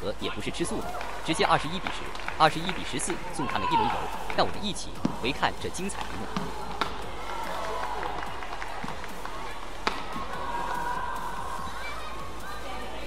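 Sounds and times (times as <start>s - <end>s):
racket striking shuttlecock: 6.0s - 7.6s, 8.8s - 10.8s.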